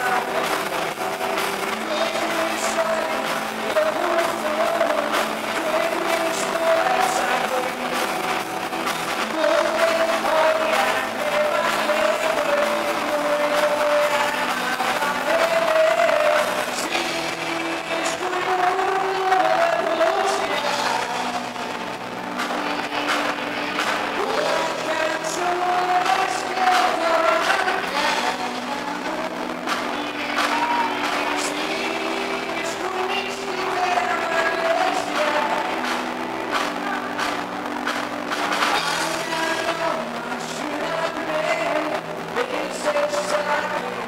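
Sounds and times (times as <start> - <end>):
drums: 0.0 - 44.0
guitar: 0.0 - 44.0
person singing: 0.0 - 44.0.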